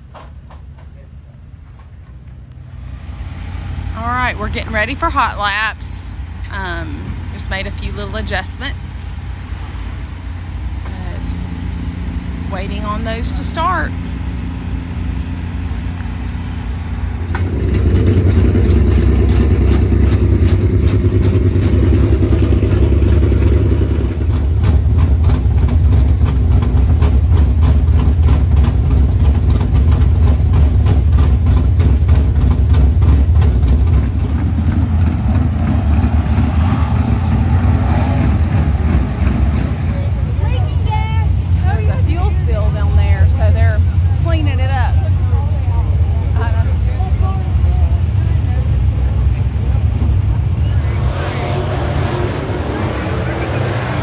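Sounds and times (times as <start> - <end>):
race car engine starting and idling: 0.0 - 54.0.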